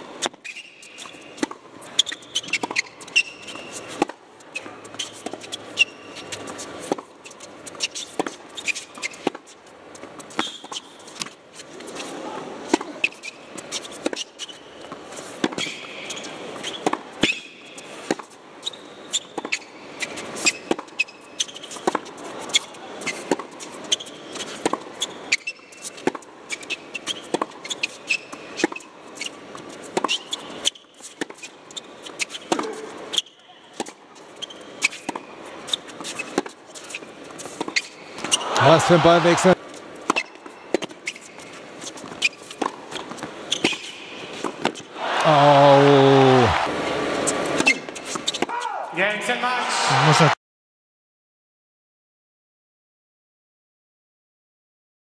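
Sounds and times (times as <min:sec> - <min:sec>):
tennis ball bouncing on hard court: 0:00.2 - 0:12.0, 0:12.7 - 0:31.5, 0:32.1 - 0:39.4, 0:40.0 - 0:44.9, 0:47.5 - 0:48.6
shoe squeaks: 0:00.2 - 0:18.0, 0:18.6 - 0:39.4, 0:40.1 - 0:44.9, 0:47.3 - 0:48.7.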